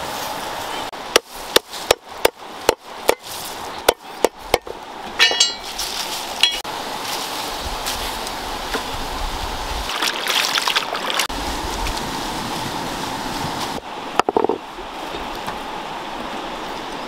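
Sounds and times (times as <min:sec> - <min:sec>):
stream water rushing: 0:00.0 - 0:17.0
ringing clinks: 0:05.2 - 0:05.7.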